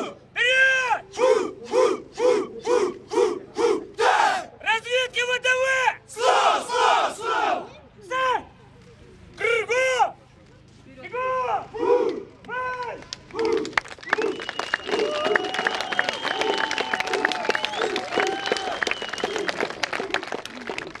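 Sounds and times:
soldiers shouting in unison: 0.0s - 4.6s, 6.1s - 7.7s, 11.6s - 12.3s
crowd clapping and cheering: 12.8s - 21.0s.

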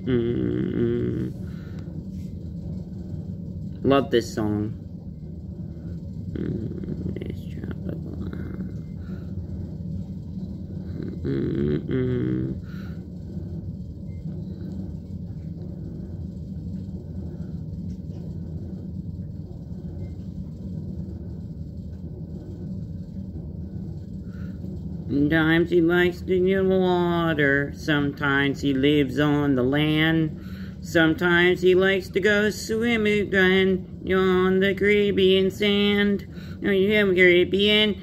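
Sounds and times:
low rumbling hum: 0.0s - 38.0s
person laughing: 11.1s - 12.6s.

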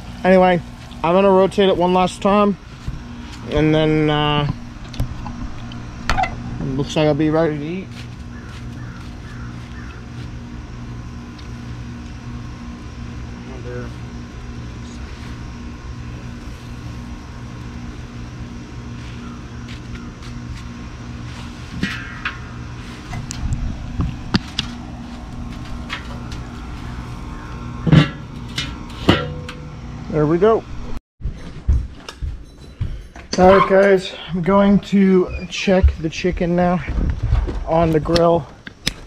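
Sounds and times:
low mechanical hum: 0.0s - 39.0s
metal grill lid clanking: 21.8s - 22.6s, 27.4s - 29.8s.

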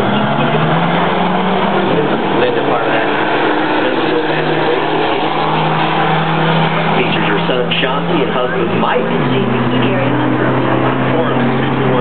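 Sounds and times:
car engines droning: 0.0s - 12.0s.

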